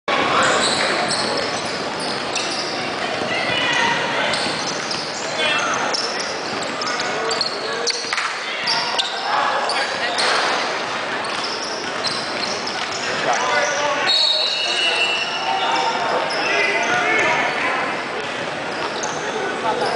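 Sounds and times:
sneakers squeaking: 0.2s - 19.9s.

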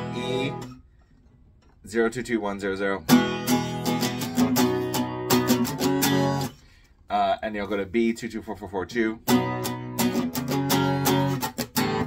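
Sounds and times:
acoustic guitar strumming: 0.0s - 0.8s, 3.1s - 6.6s, 9.2s - 12.0s.

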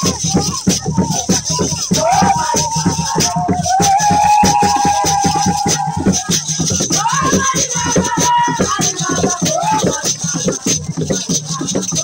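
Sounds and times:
percussion with rattles: 0.0s - 12.0s.

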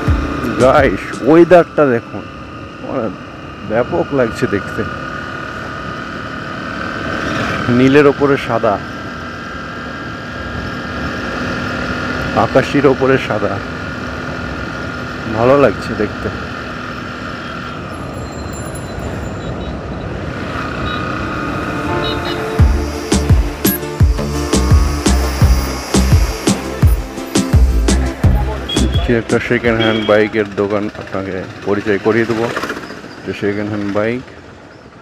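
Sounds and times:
electronic music with heavy beat: 0.0s - 1.0s, 21.9s - 30.1s
road and wind noise: 0.0s - 35.0s
vehicle engine cruising: 0.0s - 35.0s.

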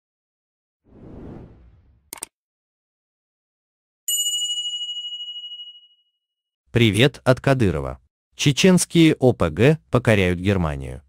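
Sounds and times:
notification bell ding: 4.1s - 6.1s.

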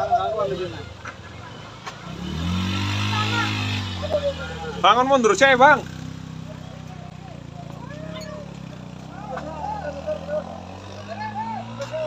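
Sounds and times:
voices calling out: 0.0s - 12.0s
vehicle engine running: 1.9s - 12.0s.

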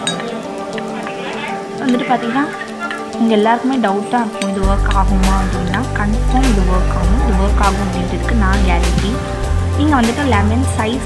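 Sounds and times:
metal spoon clinking steel bowl: 0.0s - 0.9s, 4.4s - 6.6s
background music with held tones: 0.0s - 11.0s.

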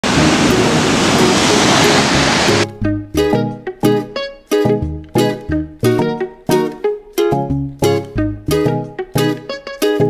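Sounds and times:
ocean surf on beach: 0.0s - 2.7s
faint music notes: 0.0s - 10.0s.

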